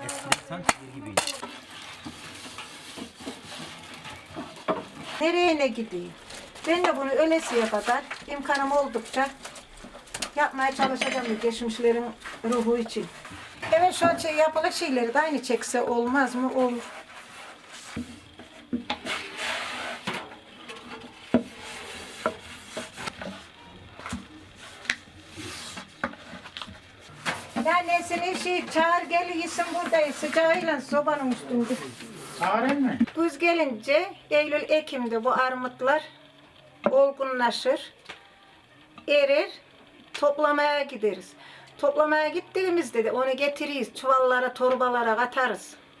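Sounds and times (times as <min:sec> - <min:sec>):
rolling pin rolling over dough: 0:01.4 - 0:33.0.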